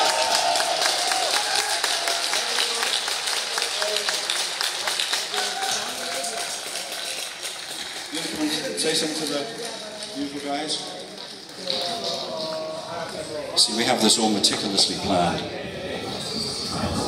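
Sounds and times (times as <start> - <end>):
audience applauding and cheering: 0.0 - 12.8
scattered voices: 4.9 - 17.0.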